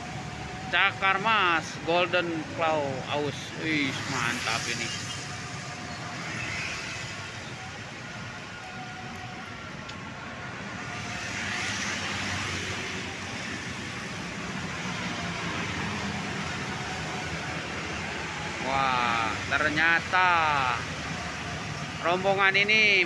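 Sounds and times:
busy road traffic: 0:00.0 - 0:23.0
motorcycles passing: 0:00.0 - 0:23.0.

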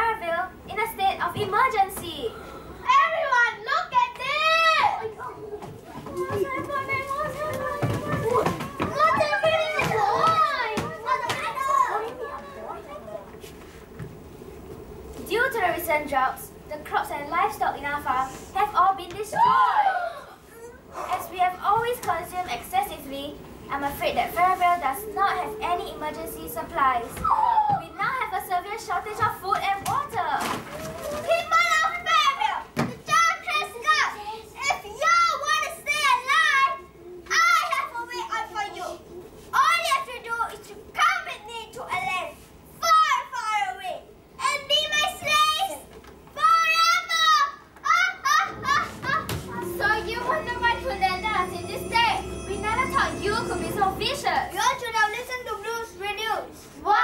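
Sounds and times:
children crying out and calling: 0:02.8 - 0:13.3, 0:19.2 - 0:21.2, 0:27.1 - 0:28.0, 0:46.4 - 0:55.3.

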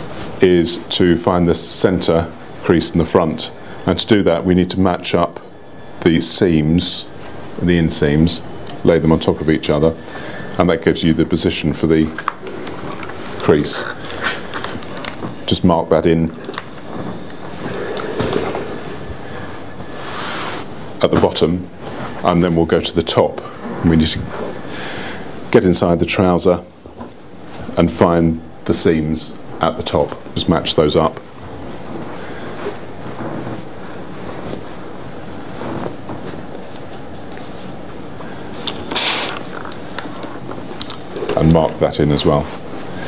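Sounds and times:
cloth rustling: 0:00.0 - 0:05.1, 0:05.7 - 0:28.6, 0:29.4 - 0:43.0
steam iron hissing: 0:16.4 - 0:20.8, 0:38.2 - 0:39.6.

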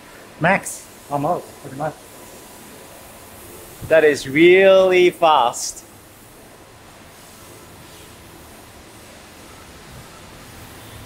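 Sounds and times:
steady background hiss: 0:00.0 - 0:11.0
man talking: 0:00.4 - 0:02.0, 0:03.9 - 0:05.8.

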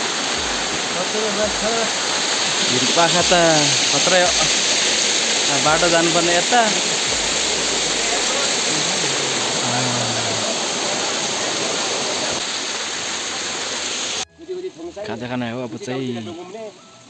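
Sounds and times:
waterfall rushing over rocks: 0:00.0 - 0:14.3
person speaking: 0:02.6 - 0:04.7, 0:05.5 - 0:10.9.

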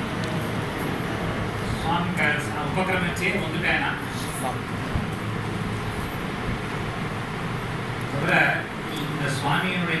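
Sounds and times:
low rumble and hiss: 0:00.0 - 0:10.0.

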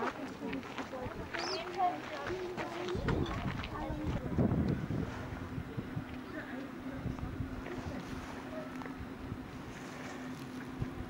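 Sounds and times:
wind buffeting microphone: 0:02.9 - 0:06.2.

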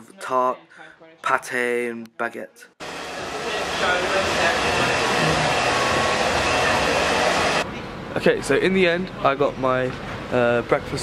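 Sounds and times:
hair tool whirring: 0:02.8 - 0:07.6.

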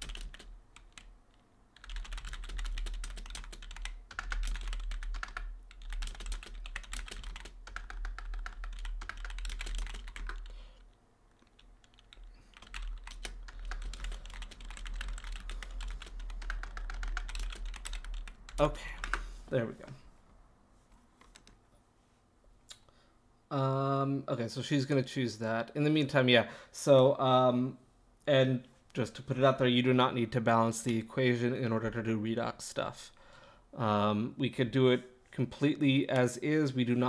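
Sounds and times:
fast typing on keyboard: 0:00.0 - 0:01.1, 0:01.8 - 0:19.2.

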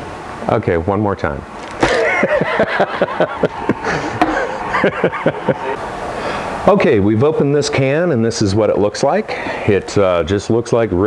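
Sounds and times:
man chuckling: 0:01.8 - 0:05.8.

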